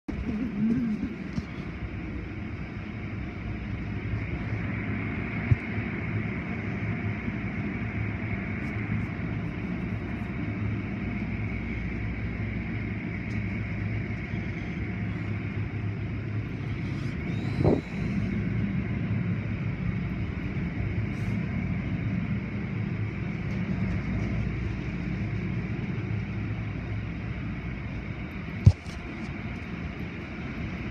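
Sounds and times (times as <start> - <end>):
low machine hum: 0.0 - 30.9.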